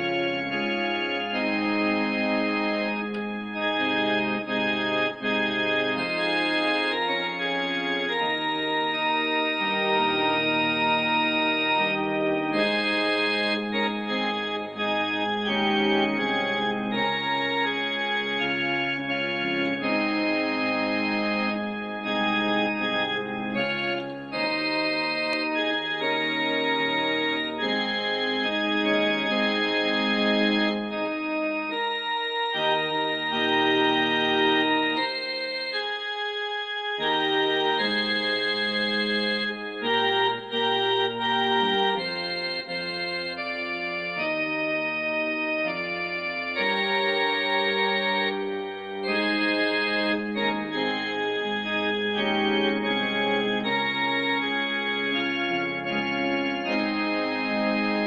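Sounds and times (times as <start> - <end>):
electronic keyboard playing chords: 0.0 - 58.0.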